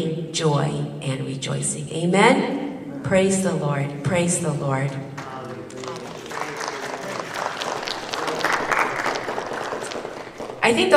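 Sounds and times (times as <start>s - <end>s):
congregation clapping: 5.1s - 10.9s.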